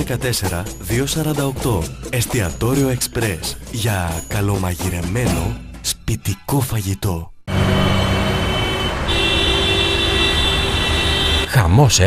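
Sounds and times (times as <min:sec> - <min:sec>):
car horn blast: 0:07.5 - 0:11.6
traffic engines running: 0:07.5 - 0:11.6.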